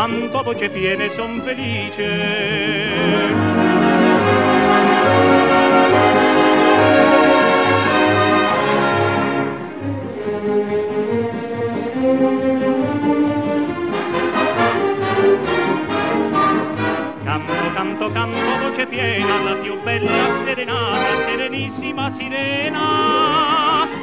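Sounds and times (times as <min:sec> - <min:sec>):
orchestral music with brass: 0:00.0 - 0:24.0.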